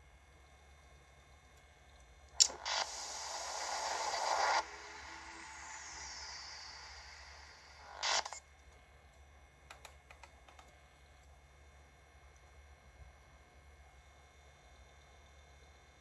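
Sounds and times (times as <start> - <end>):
hiss-like noise from speaker: 2.4 - 8.4.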